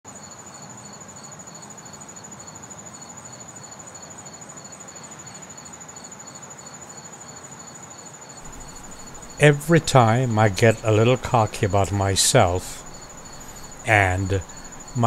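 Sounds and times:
lower cricket chirp: 0.1 - 15.0
high pulsing cricket trill: 0.2 - 15.0
soft outdoor hiss: 8.4 - 15.0.

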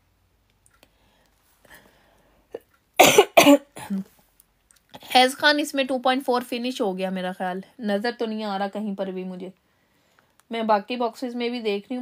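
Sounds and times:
woman coughing: 3.0 - 4.1.

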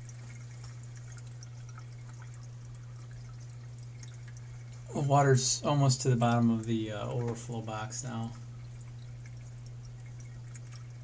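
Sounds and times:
steady low hum: 0.0 - 11.0
water dripping and trickling: 0.0 - 11.0.

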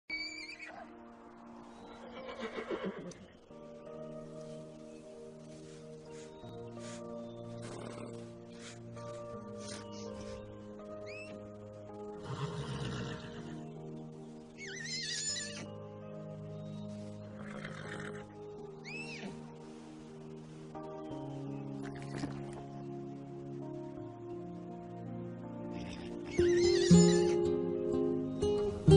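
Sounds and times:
foal whinnying: 0.1 - 0.9, 2.1 - 3.2, 14.6 - 15.7, 18.8 - 19.4, 25.8 - 27.4
soft sustained music chords: 0.1 - 28.9
horse nickering: 7.6 - 8.3.

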